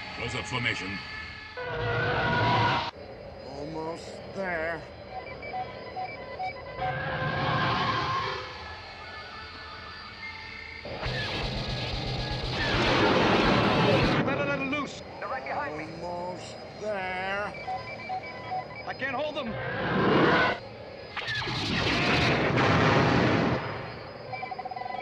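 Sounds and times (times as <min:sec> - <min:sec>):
electronic beeps: 0:03.5 - 0:22.4, 0:23.5 - 0:25.0
laser blasts: 0:20.0 - 0:23.7.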